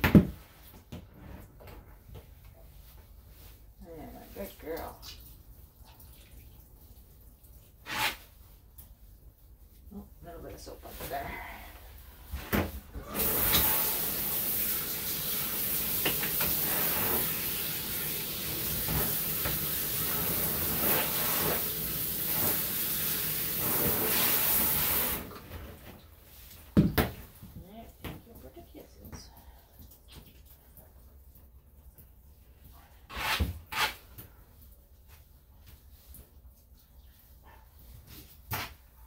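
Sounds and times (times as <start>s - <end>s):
shower water running into bathtub: 2.0s - 37.4s.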